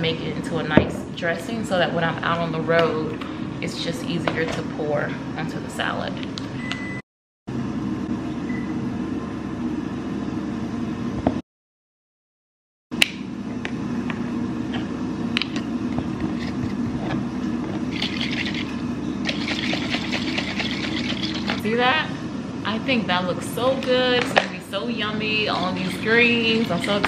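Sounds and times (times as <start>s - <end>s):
steady low hum: 0.0s - 11.4s, 12.9s - 27.0s
jar being shaken: 17.9s - 21.6s.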